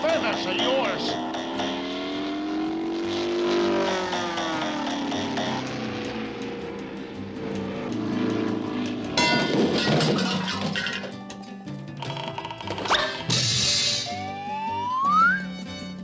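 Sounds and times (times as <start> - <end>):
cartoon music with sliding notes: 12.0 - 16.0.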